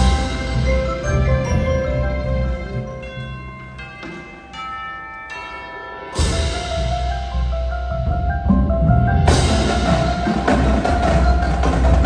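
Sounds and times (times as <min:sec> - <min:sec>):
bell-like mallet percussion chords: 0:00.0 - 0:12.0.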